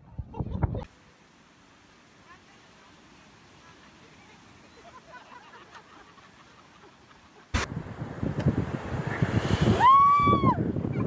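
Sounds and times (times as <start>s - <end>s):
wind on microphone: 0.0s - 0.8s, 7.6s - 11.0s
surf: 2.2s - 11.0s.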